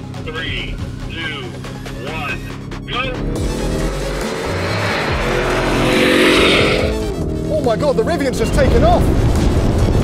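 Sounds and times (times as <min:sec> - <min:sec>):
background music: 0:00.0 - 0:08.8
engines at full throttle: 0:01.2 - 0:07.9
vehicles rushing past: 0:02.8 - 0:07.4.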